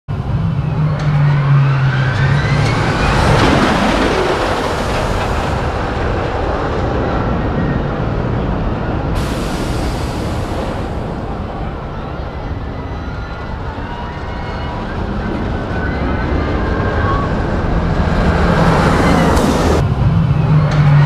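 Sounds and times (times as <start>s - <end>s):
roller coaster train rushing: 0.1s - 21.0s.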